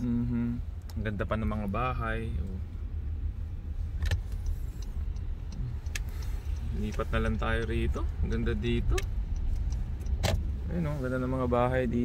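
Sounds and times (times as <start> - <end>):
car driving slowly interior rumble: 0.0 - 12.0.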